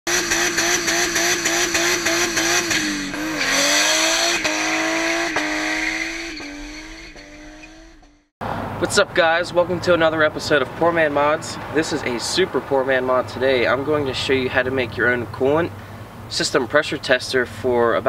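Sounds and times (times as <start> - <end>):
car engine at high revs: 0.1 - 8.7.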